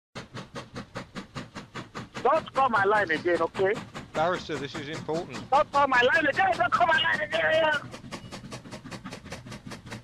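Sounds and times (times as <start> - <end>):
steam locomotive chuffing: 0.2 - 10.0.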